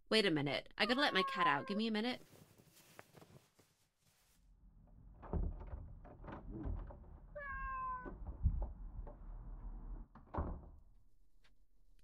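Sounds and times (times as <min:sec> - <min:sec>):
cat meowing: 0:01.0 - 0:01.8, 0:07.4 - 0:08.1
soft thumps and knocks: 0:07.9 - 0:09.2.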